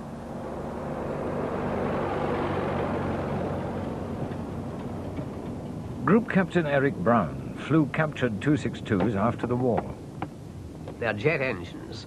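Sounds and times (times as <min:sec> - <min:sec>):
engine droning: 0:00.0 - 0:12.0.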